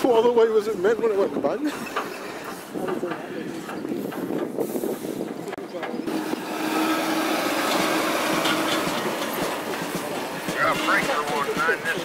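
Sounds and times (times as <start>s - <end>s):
voices: 0.0s - 4.4s, 5.2s - 12.0s
lorry driving past: 6.1s - 10.6s.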